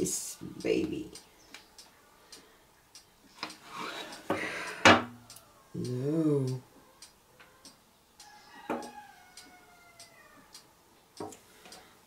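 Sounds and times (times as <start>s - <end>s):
faint scattered ticks: 0.6s - 11.9s.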